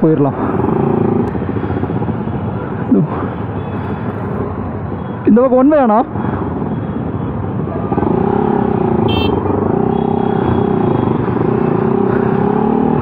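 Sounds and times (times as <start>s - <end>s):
road traffic rumble: 0.0s - 13.0s
motorcycle engine running: 7.8s - 13.0s.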